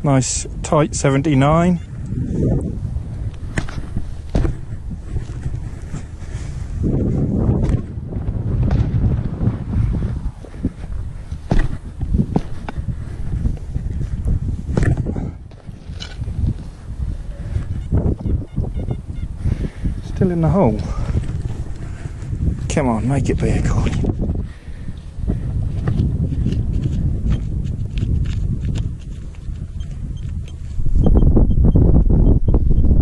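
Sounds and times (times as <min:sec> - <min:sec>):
wind rumble on microphone: 0:00.0 - 0:33.0
spade cutting into hard ground: 0:14.7 - 0:15.1.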